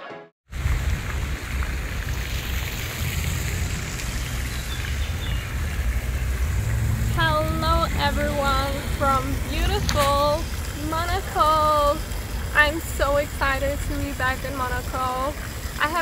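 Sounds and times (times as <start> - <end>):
wind buffeting microphone: 0.5 - 16.0
woman's voice: 7.1 - 12.0, 12.6 - 16.0.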